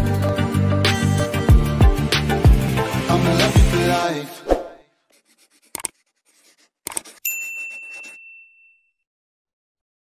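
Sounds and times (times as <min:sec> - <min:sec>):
bell ding: 0:07.2 - 0:09.0.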